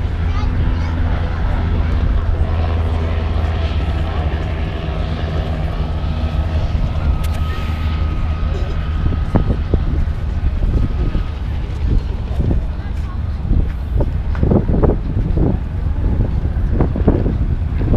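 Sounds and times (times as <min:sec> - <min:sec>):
people's voices: 0:00.0 - 0:17.9
propeller aircraft engine drone: 0:00.0 - 0:17.9.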